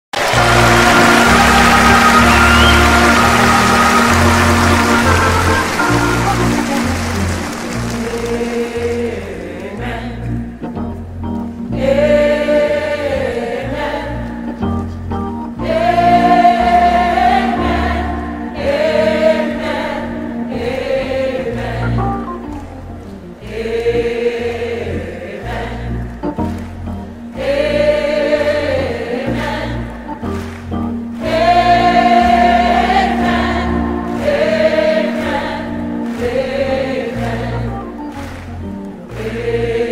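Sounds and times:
choir singing with orchestra: 0.2s - 39.9s
sustained organ chords: 0.2s - 39.9s
bass line: 0.3s - 8.5s.

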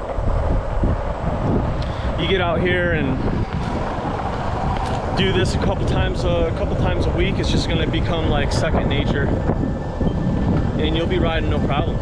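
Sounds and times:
longboard wheels rolling on asphalt: 0.0s - 12.0s
wind buffeting microphone: 0.0s - 12.0s.

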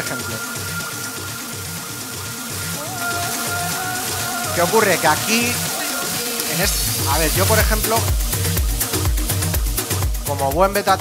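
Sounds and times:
techno music: 0.0s - 11.0s
steady kick drum: 6.6s - 11.0s.

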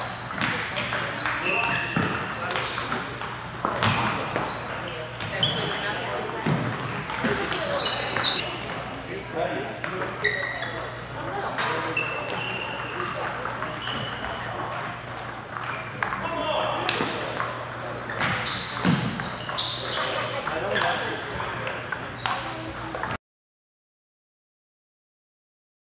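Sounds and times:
ping-pong balls clicking: 0.0s - 4.5s, 11.2s - 23.2s
shoe soles squeaking: 0.0s - 5.9s, 6.8s - 8.5s, 10.2s - 13.2s, 13.8s - 14.8s, 17.9s - 21.2s
background chatter: 0.0s - 23.2s
voices in a hall: 0.0s - 23.2s.

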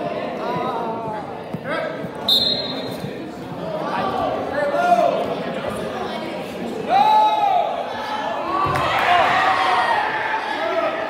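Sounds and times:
voices shouting in a gym: 0.0s - 11.0s
referee's whistle blast: 2.3s - 3.0s.

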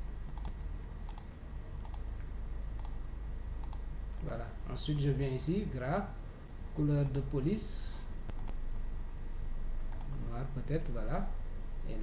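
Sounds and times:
low steady hum: 0.0s - 12.0s
computer mouse button clicking: 0.3s - 2.0s, 2.8s - 3.0s, 3.6s - 3.9s, 8.3s - 8.6s.

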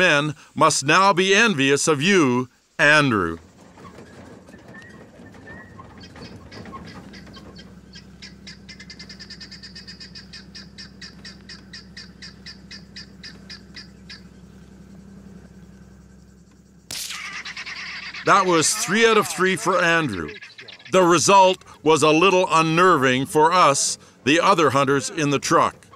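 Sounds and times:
low steady hum: 0.0s - 25.9s
guinea fowl cackling: 4.8s - 14.6s, 17.1s - 21.8s.

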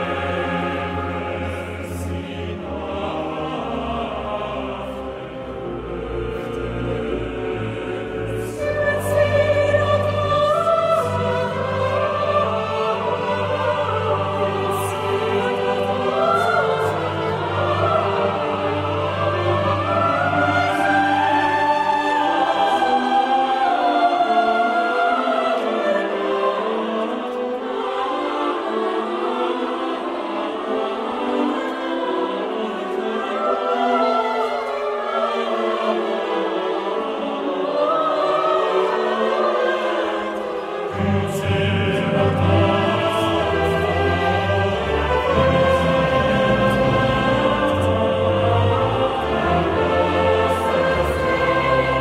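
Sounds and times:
choir singing sustained lines: 0.0s - 52.0s
orchestra playing: 0.0s - 52.0s.

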